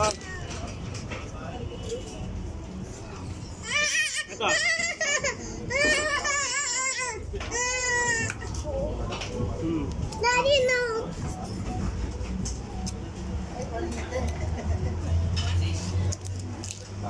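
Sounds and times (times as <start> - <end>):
toddler crying: 3.6 - 8.6.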